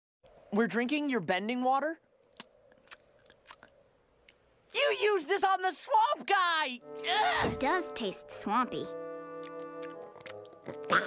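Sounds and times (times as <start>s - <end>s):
lip smacks and mouth clicks: 2.3s - 4.6s, 9.4s - 11.0s.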